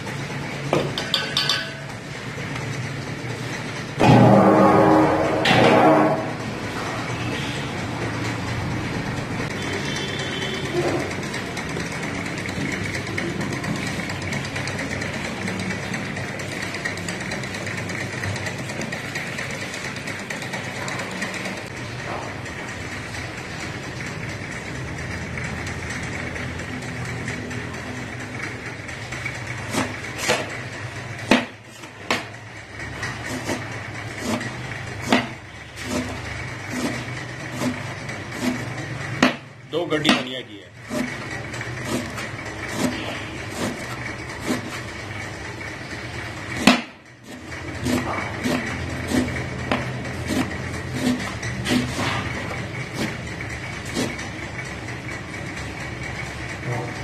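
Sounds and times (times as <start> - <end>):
kitchen background roar: 0.0 - 57.0
spatula scraping steel pan: 29.6 - 30.5, 32.8 - 39.4, 40.0 - 44.9, 46.6 - 54.5
knife chopping on wooden board: 31.3 - 32.3, 35.0 - 35.3, 39.2 - 39.4, 40.1 - 40.3, 41.8 - 43.8, 46.6 - 46.9.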